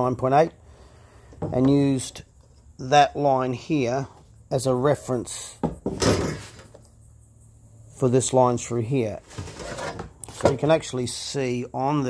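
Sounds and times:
metal sheet scraping across paper: 9.2s - 10.7s.

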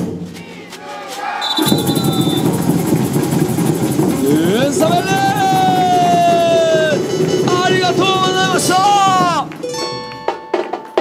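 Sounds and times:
samba drums rolling: 0.0s - 11.0s
person shouting: 4.4s - 7.0s.

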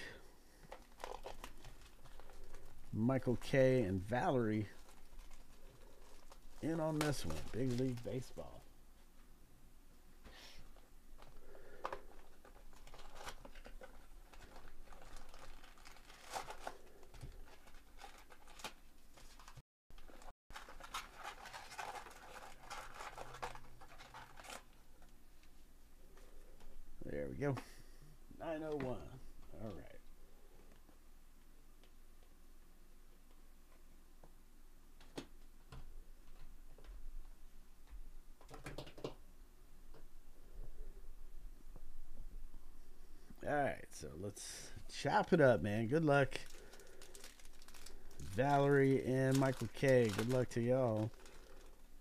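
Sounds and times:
wrapper crinkling: 0.6s - 8.7s, 11.2s - 25.2s, 46.0s - 52.0s.

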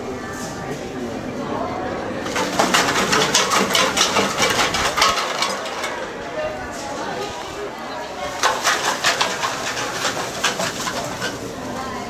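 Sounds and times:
plastic bags and cans rustling: 2.2s - 12.0s.

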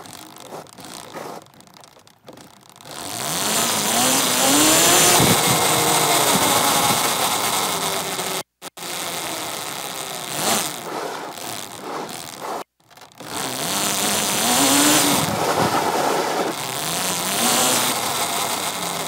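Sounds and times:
electric motor whine: 2.7s - 19.0s.

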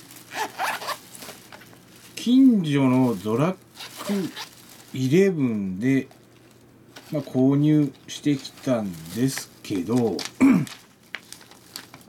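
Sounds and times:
quiet handling noise: 0.0s - 12.0s
zipper being pulled: 0.3s - 1.4s, 3.8s - 4.5s.

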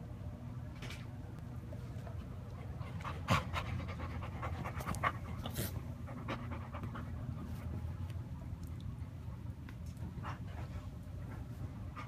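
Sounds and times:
dog panting: 2.5s - 8.0s.

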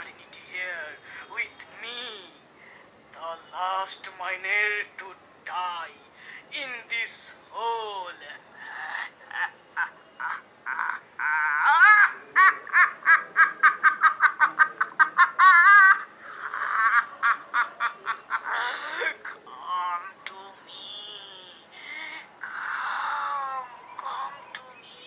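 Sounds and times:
man laughing maniacally: 8.8s - 19.5s.

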